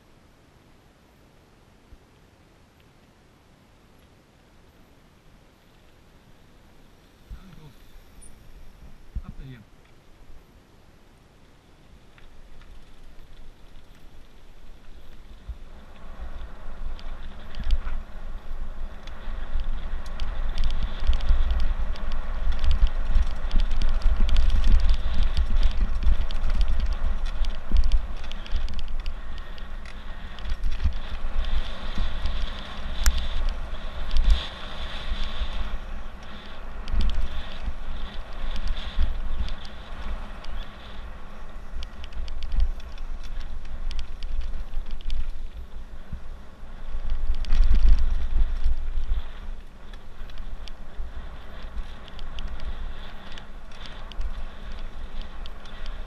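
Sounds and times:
bike rattles and clicks: 11.8 - 56.0
wind buffeting microphone: 12.0 - 56.0.

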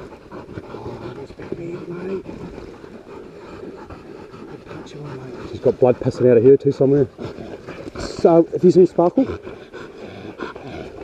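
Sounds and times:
dogs panting: 0.0 - 11.0
rustling and crackling leaves: 0.0 - 11.0.

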